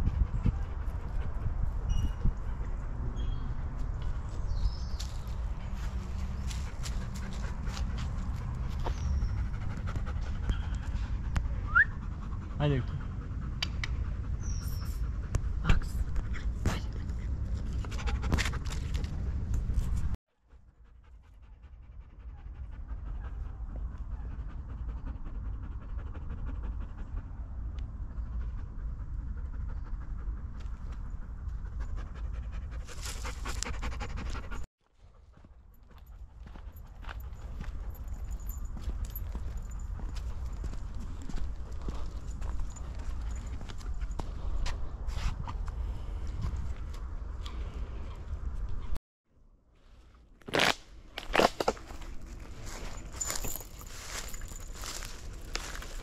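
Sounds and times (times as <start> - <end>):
dog panting: 5.8 - 18.8, 20.6 - 44.6.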